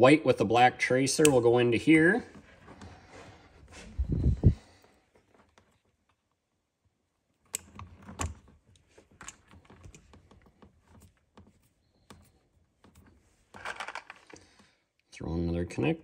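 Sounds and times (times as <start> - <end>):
small wires and connectors rustling: 1.2 - 14.9.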